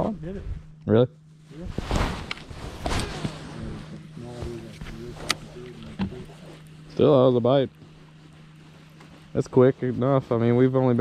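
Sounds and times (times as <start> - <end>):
rustling: 1.4 - 11.0
electric motor humming: 2.3 - 11.0.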